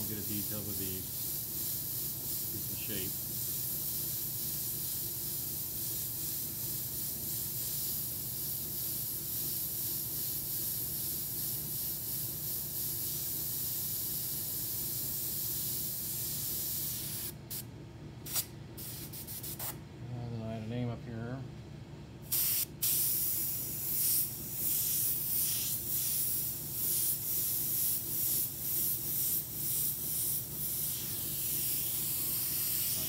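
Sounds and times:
airbrush spraying hiss: 0.0s - 17.7s, 18.3s - 19.8s, 22.2s - 33.0s
airbrush short spurts: 18.2s - 19.8s, 22.3s - 33.0s.

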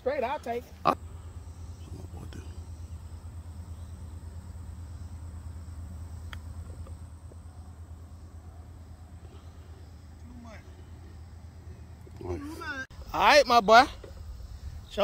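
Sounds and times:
faint voices: 1.7s - 3.0s
golf club striking ball: 6.2s - 7.5s.

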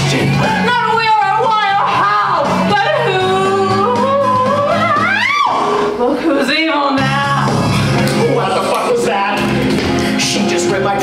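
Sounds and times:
instrumental accompaniment: 7.0s - 11.0s.

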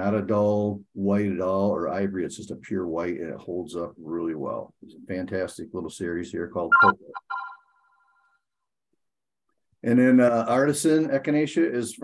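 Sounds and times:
short pitched tone: 6.7s - 7.9s.

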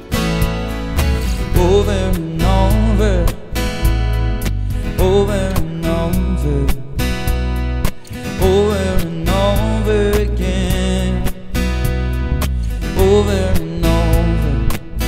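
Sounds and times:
acoustic guitar strumming: 0.0s - 15.0s
person singing: 0.9s - 3.9s, 4.5s - 7.0s, 8.0s - 11.7s, 12.6s - 15.0s.

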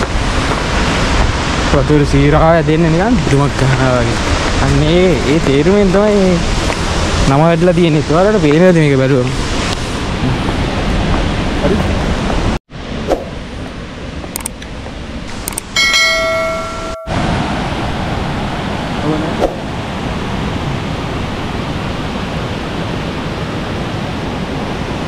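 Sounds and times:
waterfall roaring: 0.0s - 25.0s
bell-like chime: 15.8s - 17.4s.

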